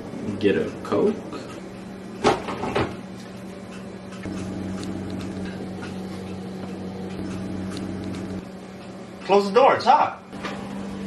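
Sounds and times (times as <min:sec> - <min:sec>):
refrigerator humming: 0:00.0 - 0:11.0.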